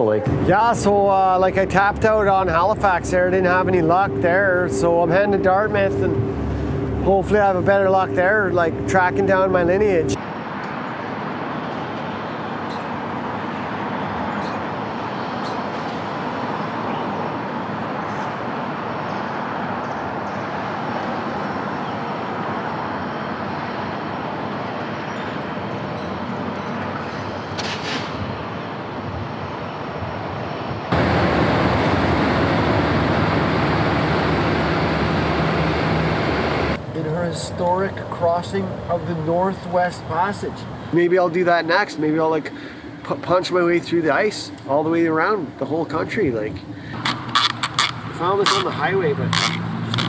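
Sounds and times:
steady noise with low hum: 0.0 - 14.9, 27.4 - 47.3
distant road traffic: 0.0 - 50.0.

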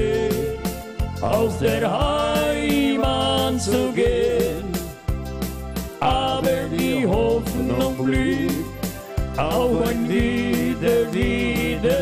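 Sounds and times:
accordion melody: 0.0 - 12.0
keyboard bass: 0.0 - 12.0.

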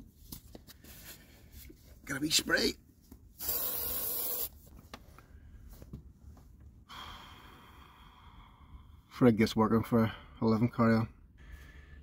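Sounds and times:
aerosol spray hiss: 3.4 - 4.5.

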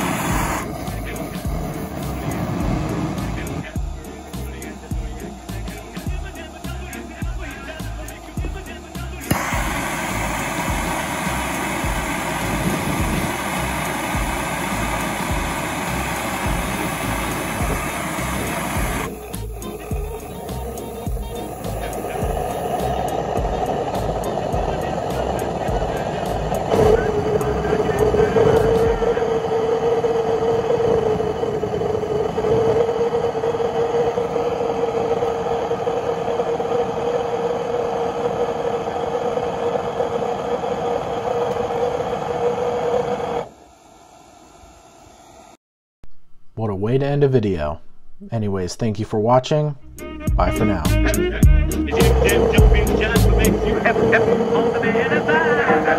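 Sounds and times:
background music with beat: 0.0 - 29.2, 49.8 - 53.8
jet engine whine and rushing: 0.0 - 45.6, 51.9 - 55.9.

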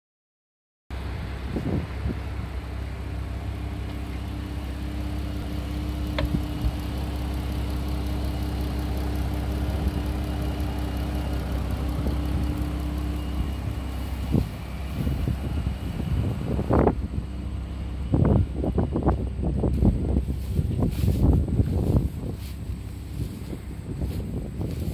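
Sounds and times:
car engine idling: 0.9 - 24.9.

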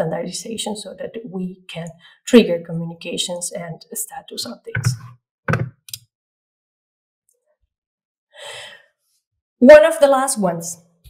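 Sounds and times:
woman breathing: 8.4 - 9.0.

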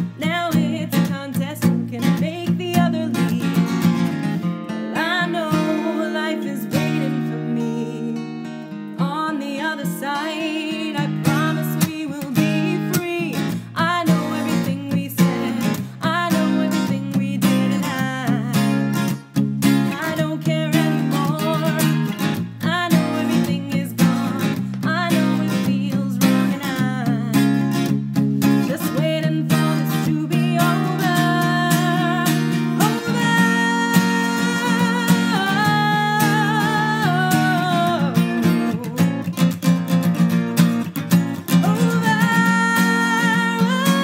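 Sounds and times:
acoustic guitar strumming: 0.0 - 44.0.

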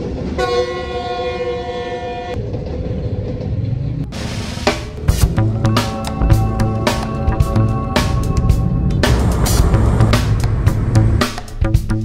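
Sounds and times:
train carriages running past: 0.0 - 11.7
train horn: 0.4 - 2.4, 5.4 - 9.3.

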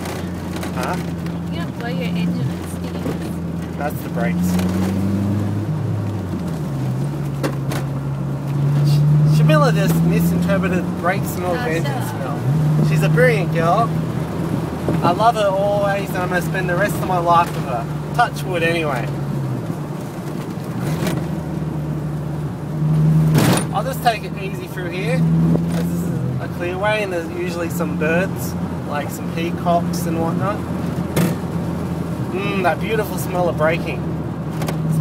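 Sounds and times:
car engine running: 0.0 - 35.0
road noise: 0.0 - 35.0.

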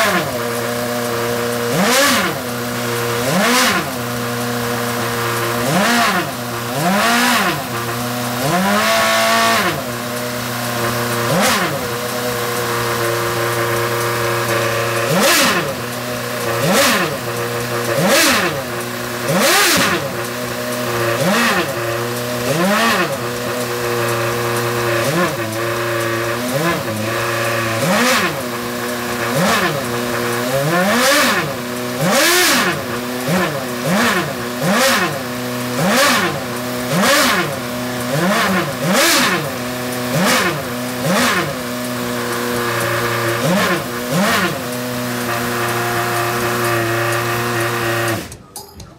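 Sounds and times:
race car engine revving: 0.0 - 48.4.

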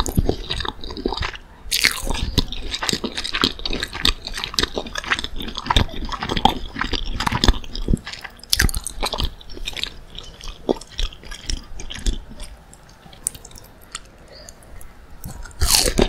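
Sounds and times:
crunchy chewing: 0.0 - 16.0.

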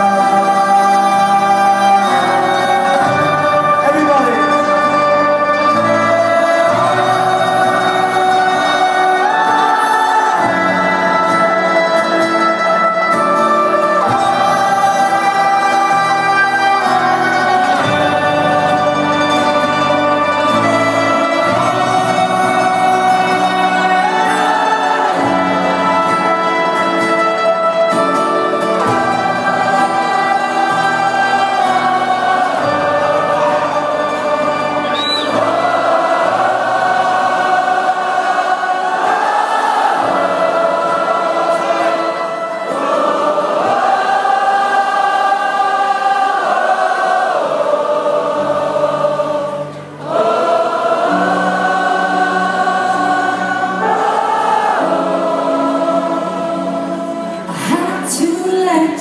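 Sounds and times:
voices singing held notes: 0.0 - 59.0.

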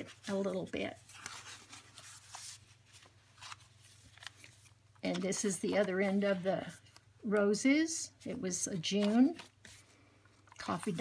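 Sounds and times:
soft paper swishes: 0.0 - 7.1, 8.2 - 10.0
paper pages rustling: 0.0 - 11.0.

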